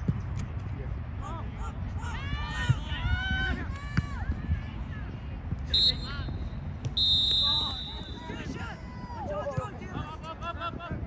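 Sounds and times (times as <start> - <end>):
low rumble of outdoor noise: 0.0 - 11.0.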